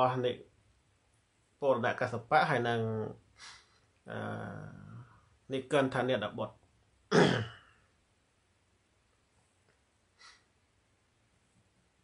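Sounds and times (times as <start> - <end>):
man clearing throat: 7.1 - 7.7.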